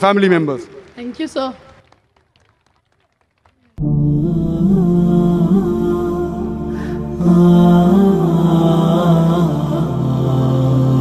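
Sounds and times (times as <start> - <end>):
person chanting melodically: 3.8 - 11.0.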